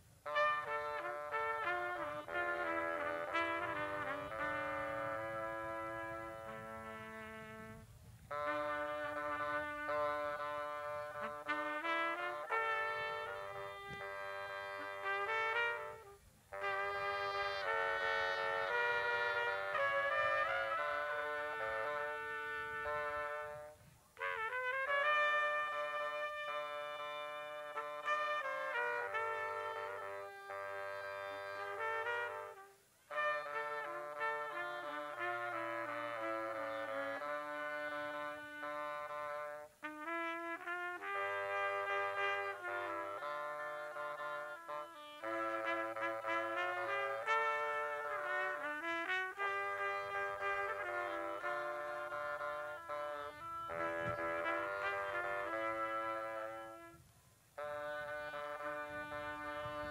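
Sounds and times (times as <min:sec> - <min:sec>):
trumpet playing: 0:00.0 - 0:59.9.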